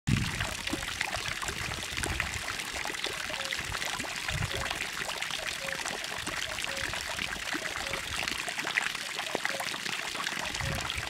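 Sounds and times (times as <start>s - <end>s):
fountain water splashing into pond: 0.1s - 11.0s.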